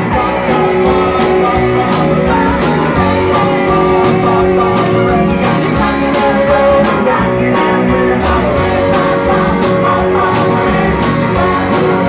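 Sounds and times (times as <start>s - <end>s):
drum beat: 0.0s - 12.0s
electric guitar: 0.0s - 12.0s
keyboard: 0.0s - 12.0s.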